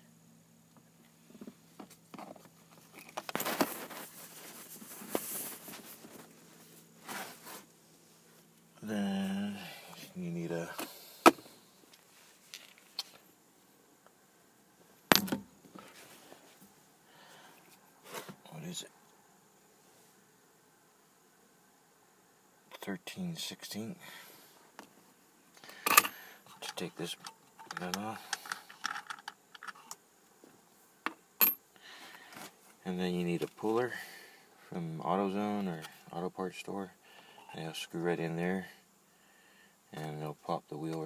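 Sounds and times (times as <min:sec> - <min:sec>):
mumbled voice: 0:08.8 - 0:10.4.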